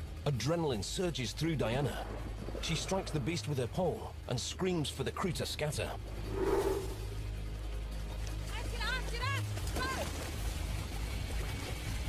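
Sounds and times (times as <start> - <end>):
steady low rumble: 5.9 - 7.4.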